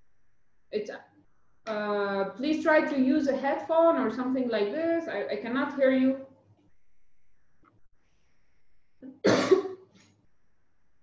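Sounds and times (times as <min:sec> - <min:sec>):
person coughing: 0:09.1 - 0:09.8.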